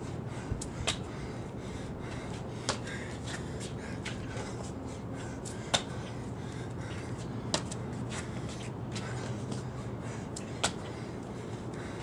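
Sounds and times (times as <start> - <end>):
body slapping concrete: 10.4 - 10.8.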